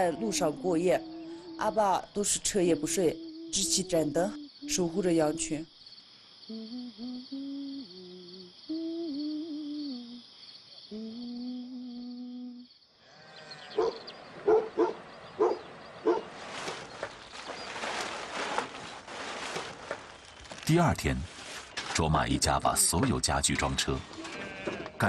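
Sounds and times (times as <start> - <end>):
person humming: 0.0 - 1.8, 2.8 - 5.6, 6.5 - 10.3, 10.9 - 12.7
crickets chirping: 0.0 - 25.0.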